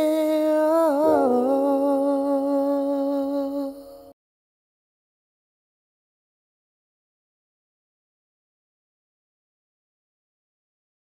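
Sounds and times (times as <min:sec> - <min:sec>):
person humming a long note: 0:00.0 - 0:04.1
sustained chord: 0:00.0 - 0:04.1.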